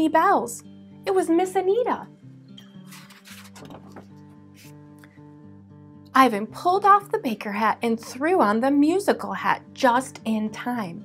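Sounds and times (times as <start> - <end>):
quiet instrumental music: 0.0 - 11.0
paper page rustle: 2.8 - 4.7.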